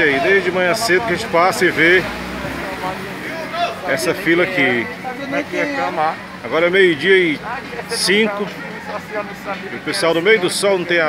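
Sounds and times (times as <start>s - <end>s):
faint voices of people: 0.0s - 11.0s
man speaking: 0.0s - 11.0s.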